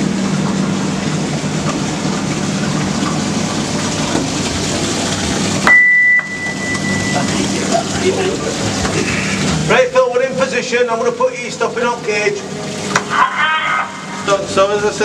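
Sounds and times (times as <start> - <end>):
low hum: 0.0 - 10.0
falling water: 0.0 - 15.0
loud high beep: 5.7 - 7.3.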